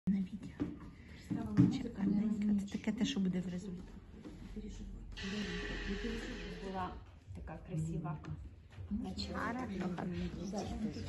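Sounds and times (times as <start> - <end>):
soft indistinct voices: 0.1 - 11.0.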